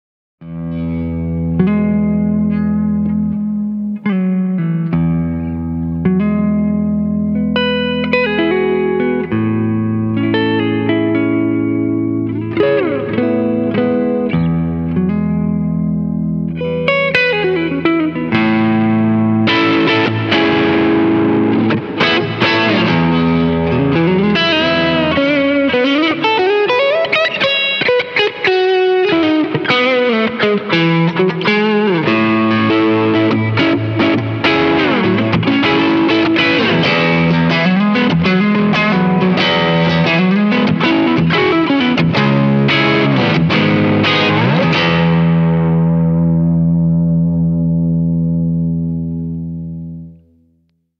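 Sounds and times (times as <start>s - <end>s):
electric guitar chords: 0.4s - 50.7s.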